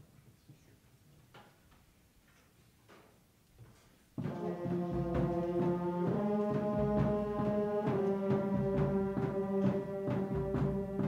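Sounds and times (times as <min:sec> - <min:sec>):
concert band brass chords: 0:04.2 - 0:11.0.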